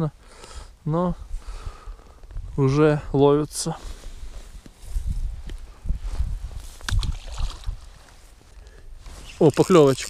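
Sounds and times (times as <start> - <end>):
wind buffeting microphone: 4.2 - 8.0
fishing rod and reel clicks: 9.4 - 10.0.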